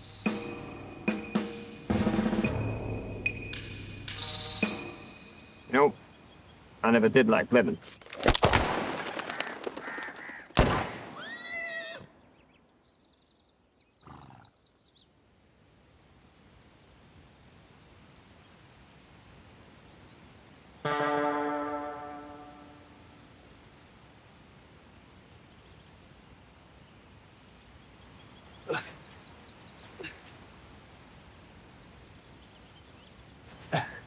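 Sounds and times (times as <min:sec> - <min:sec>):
faint birdsong: 0:00.0 - 0:08.0, 0:11.2 - 0:34.0
falling bird calls: 0:05.6 - 0:15.2, 0:25.4 - 0:34.0
gunshots: 0:10.5 - 0:11.2
sustained musical note: 0:20.9 - 0:23.3.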